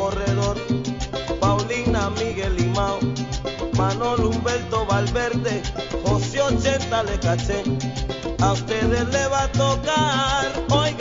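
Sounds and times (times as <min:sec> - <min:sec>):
repeating bass line: 0:00.0 - 0:11.0
steady percussion: 0:00.0 - 0:11.0.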